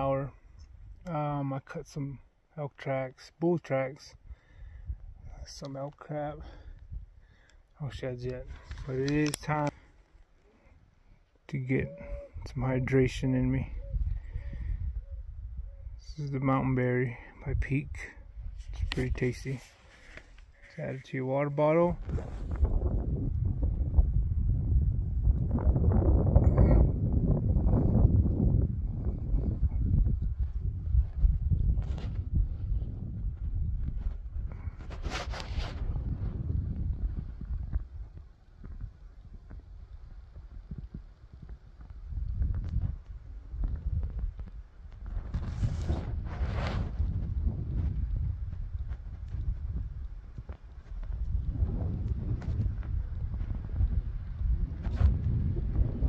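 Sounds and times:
wind buffeting microphone: 0:06.4 - 0:09.8, 0:11.6 - 0:16.4, 0:21.8 - 0:56.0.

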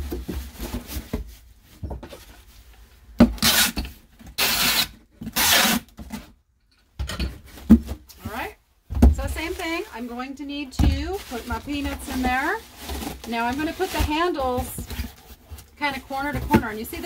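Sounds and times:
tape gun pulling packing tape: 0:03.4 - 0:03.8, 0:04.4 - 0:05.9
cardboard flaps rustling: 0:10.8 - 0:17.0.

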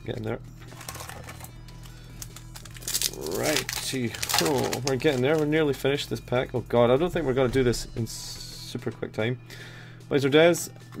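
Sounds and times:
low steady hum: 0:00.0 - 0:11.0
foil wrapper and cards crinkling: 0:00.6 - 0:05.8.

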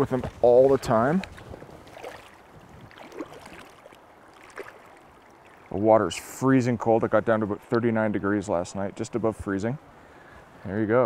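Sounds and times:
small water splashes: 0:00.0 - 0:06.8
shallow stream water: 0:00.0 - 0:11.0.

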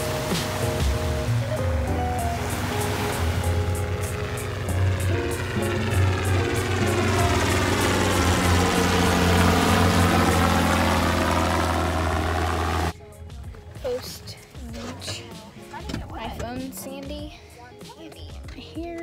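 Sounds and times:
helicopter flying overhead: 0:00.0 - 0:13.0
background music: 0:00.0 - 0:19.0.

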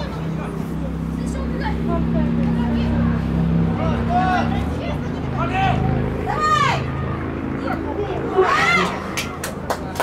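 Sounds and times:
players shouting: 0:03.7 - 0:09.4.

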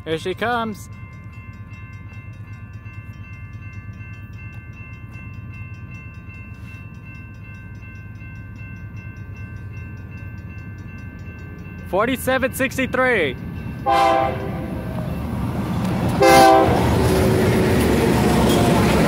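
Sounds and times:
diesel freight train rumbling: 0:00.0 - 0:19.0.

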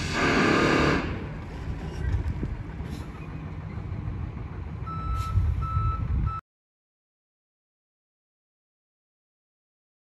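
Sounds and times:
diesel engine running: 0:00.0 - 0:06.4
reversing alarm beeping: 0:04.8 - 0:06.4.

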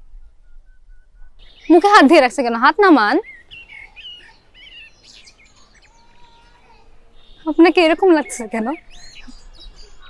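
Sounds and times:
birds chirping: 0:01.4 - 0:10.0.

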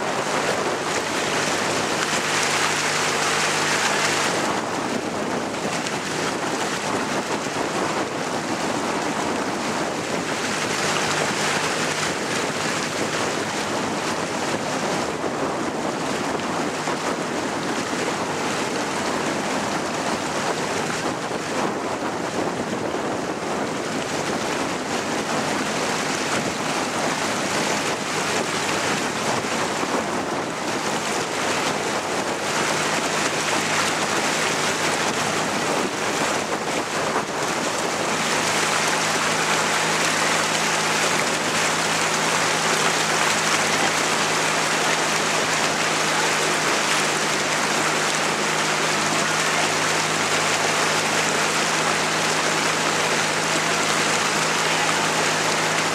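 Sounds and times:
rushing water: 0:00.0 - 0:55.9
wind on microphone: 0:00.0 - 0:55.9.

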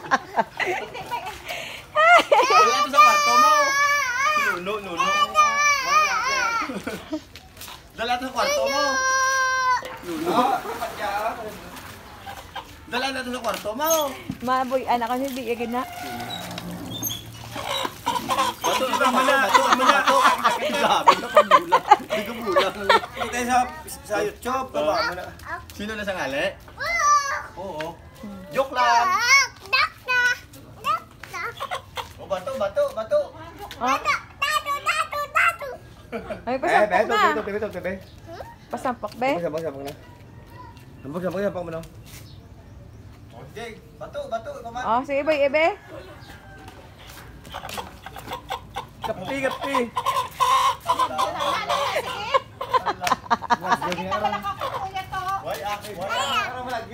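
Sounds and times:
young child calling and babbling: 0:02.4 - 0:06.7, 0:08.4 - 0:10.0, 0:24.9 - 0:25.7, 0:26.8 - 0:27.6, 0:28.8 - 0:31.9, 0:33.8 - 0:35.9, 0:38.2 - 0:38.7, 0:56.0 - 0:56.7
chicken squawking: 0:15.5 - 0:21.6, 0:31.5 - 0:32.4, 0:47.1 - 0:53.0.

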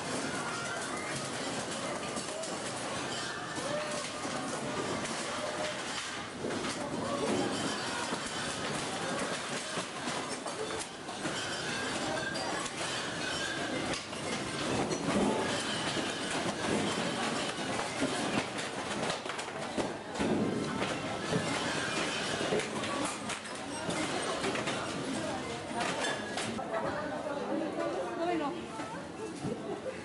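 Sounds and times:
shelving and stock rattling: 0:00.0 - 0:26.6
goods knocking and falling: 0:00.1 - 0:24.9.

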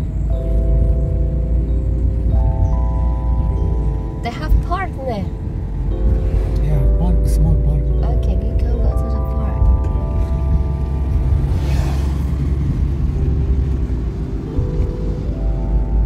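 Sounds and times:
car road rumble inside cabin: 0:00.0 - 0:16.0
slow sustained chord music: 0:00.0 - 0:16.0.

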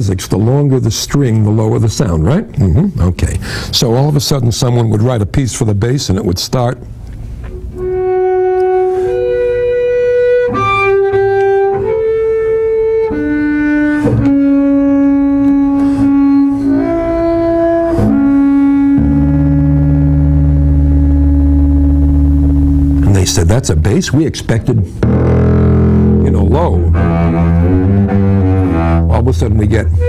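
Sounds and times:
double bass bowed high notes: 0:07.5 - 0:24.2, 0:24.9 - 0:30.0
low bass note: 0:14.0 - 0:24.0, 0:25.0 - 0:30.0.

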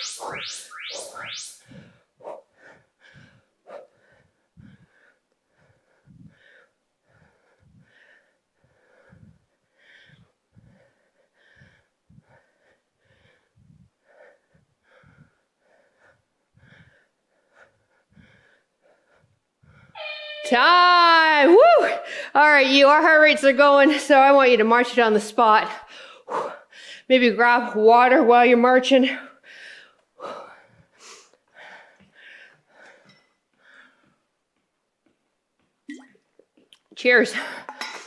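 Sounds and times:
woman breathing hard: 0:01.7 - 0:20.0, 0:21.9 - 0:22.4, 0:25.8 - 0:27.1, 0:29.3 - 0:34.3.

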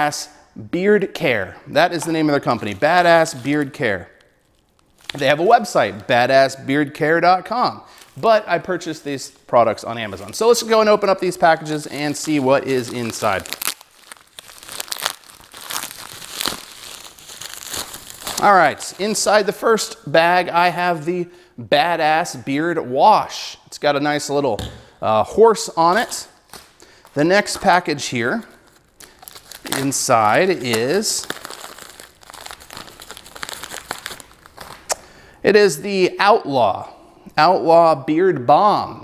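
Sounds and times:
plastic bag rustling: 0:10.0 - 0:19.3, 0:28.4 - 0:34.9
bag tearing: 0:11.4 - 0:19.3, 0:28.6 - 0:34.9.

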